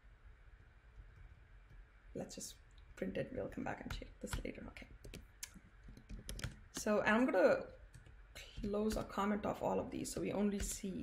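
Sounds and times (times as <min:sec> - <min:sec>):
keyboard key taps: 0:03.9 - 0:06.9, 0:07.9 - 0:09.1.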